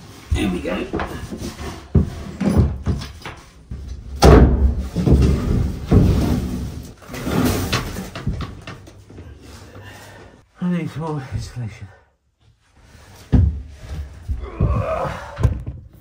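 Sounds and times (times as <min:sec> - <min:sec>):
thumps of person crawling on boards: 0:13.2 - 0:16.0.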